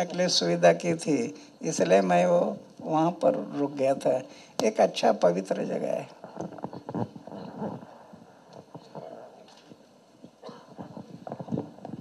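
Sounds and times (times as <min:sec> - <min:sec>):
microphone handling clicks: 0:06.2 - 0:12.0.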